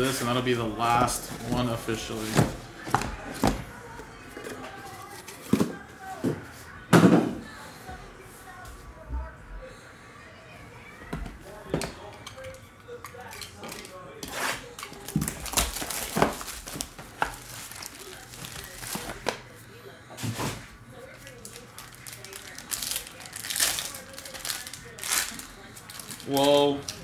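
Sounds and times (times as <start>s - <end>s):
plastic wrapper rustling: 13.2s - 19.4s, 21.0s - 27.0s
foil card pack crinkling and tearing: 13.3s - 19.4s, 21.2s - 27.0s.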